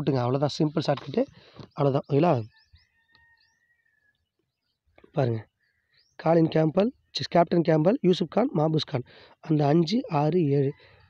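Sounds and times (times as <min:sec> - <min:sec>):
faint bird chirps: 0:00.2 - 0:07.3.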